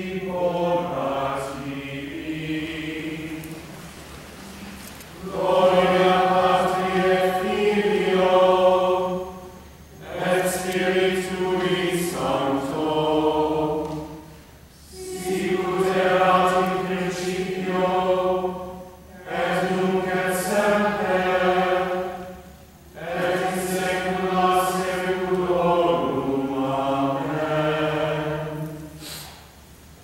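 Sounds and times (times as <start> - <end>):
group singing plainchant: 0.0 - 4.6, 5.2 - 29.2.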